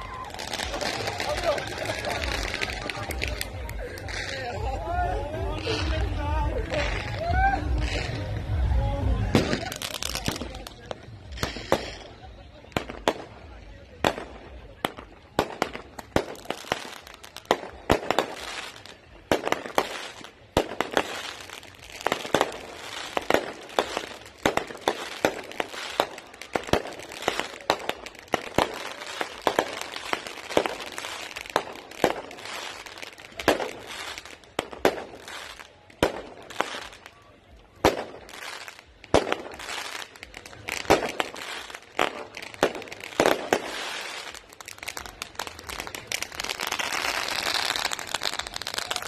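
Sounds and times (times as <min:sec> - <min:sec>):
fireworks and firecrackers bangs: 0:00.0 - 0:49.0.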